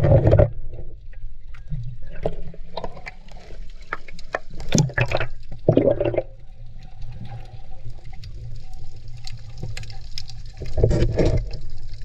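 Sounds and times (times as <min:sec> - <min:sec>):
water splashing and sloshing: 0:00.0 - 0:12.0.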